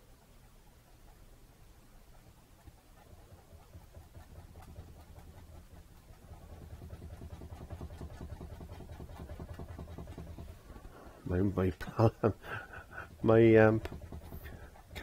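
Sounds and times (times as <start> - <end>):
paintbrush tapping on canvas: 2.6 - 11.0, 12.0 - 15.0.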